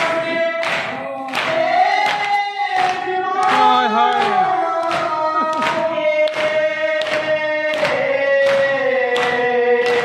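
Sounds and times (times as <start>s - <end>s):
group singing a lament: 0.0s - 10.0s.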